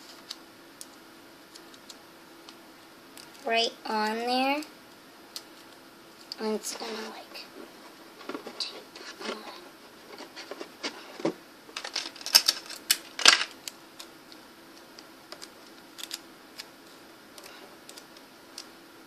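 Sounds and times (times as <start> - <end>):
faint steady hum: 0.0 - 19.0
sticky tape and cardboard crackling: 11.8 - 16.7, 17.4 - 18.7.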